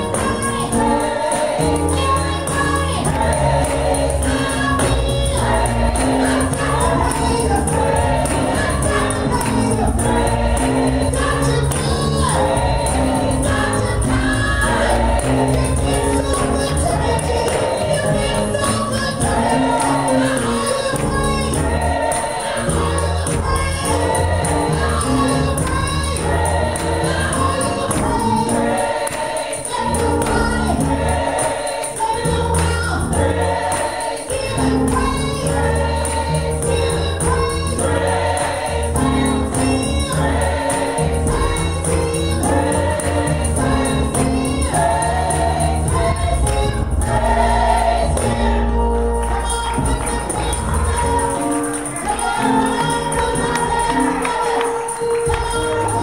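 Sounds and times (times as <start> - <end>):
group singing gospel: 0.0 - 56.0
keyboard accompaniment: 0.0 - 56.0
tambourine: 0.0 - 56.0.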